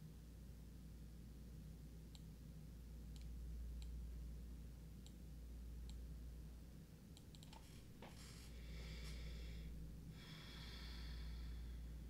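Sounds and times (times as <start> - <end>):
low steady hum: 0.0 - 12.0
computer mouse clicks: 3.1 - 4.0, 7.1 - 7.6.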